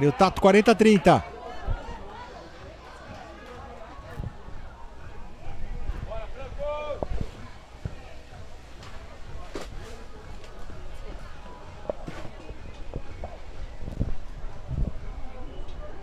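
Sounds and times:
voices of players and spectators: 0.0s - 16.0s.

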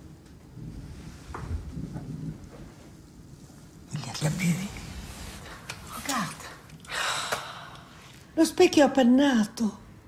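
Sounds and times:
woman speaking agitatedly: 6.0s - 6.5s
woman exhaling: 6.9s - 7.9s.

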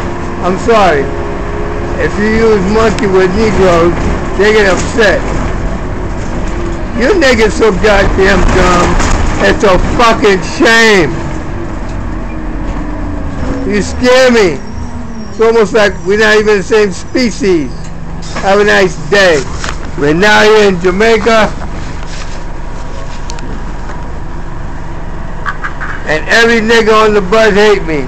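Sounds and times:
bus interior rumble: 0.0s - 28.0s.

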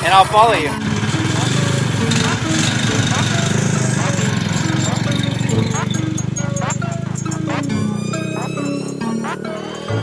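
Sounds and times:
kart engine running: 0.0s - 10.0s.

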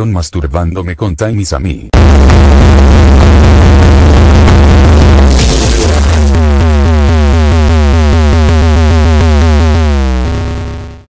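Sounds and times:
heavy synth bass: 2.0s - 11.0s.

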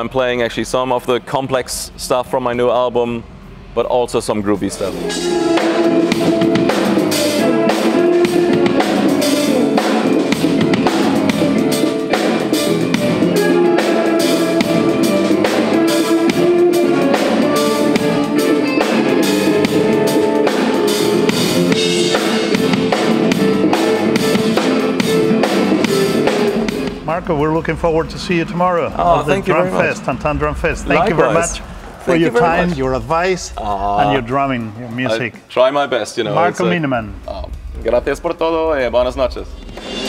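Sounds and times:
held pitched tones: 0.6s - 35.5s, 36.2s - 37.5s
drum kit and cymbals playing: 1.7s - 34.5s, 36.4s - 40.0s.

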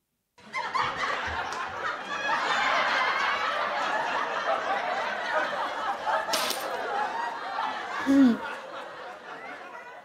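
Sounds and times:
canned audience laughter: 0.4s - 10.0s.

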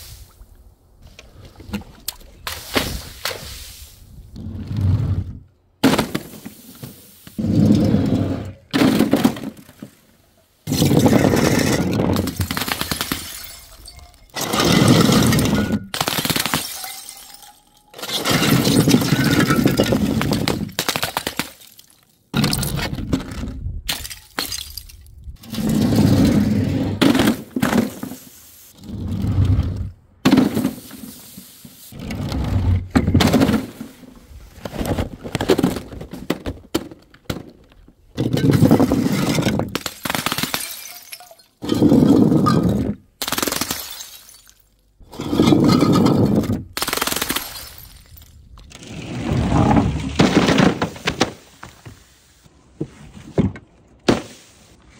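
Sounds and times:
glass bottles smashing: 10.7s - 20.7s, 23.9s - 25.1s, 38.2s - 44.8s.

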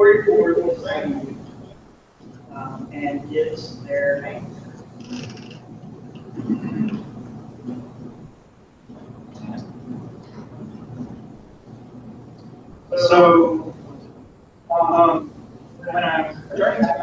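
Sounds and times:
indistinct voices: 0.0s - 8.3s, 8.9s - 17.0s
room noise: 0.0s - 17.0s.

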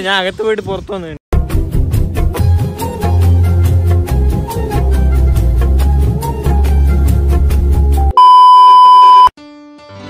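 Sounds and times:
electronic beep: 8.2s - 9.3s.

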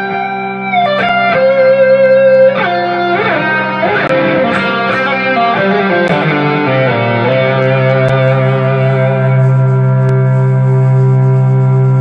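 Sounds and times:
electric guitar chord ringing: 0.0s - 11.9s.

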